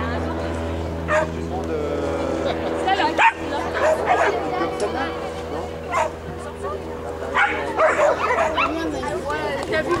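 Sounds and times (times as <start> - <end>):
dog yipping: 7.4 - 9.2.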